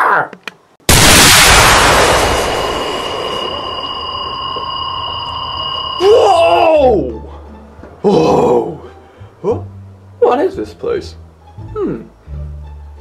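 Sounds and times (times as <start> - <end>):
magic spell noise blast: 0.9 - 6.2
high ringing chord: 1.3 - 7.4.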